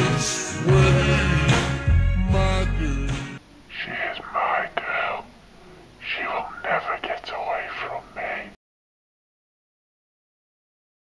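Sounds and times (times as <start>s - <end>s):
person whispering: 3.6s - 8.6s.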